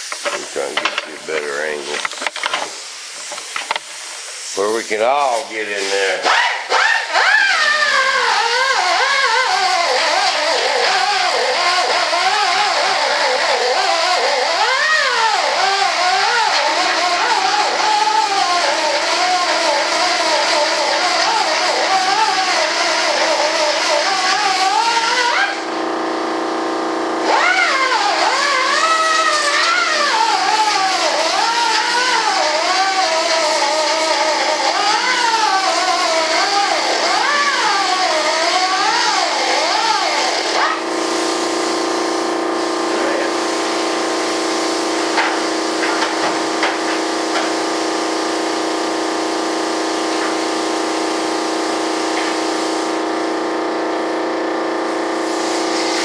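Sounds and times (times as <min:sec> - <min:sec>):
belt sander grinding wood: 0:00.0 - 0:25.9, 0:27.2 - 0:48.5.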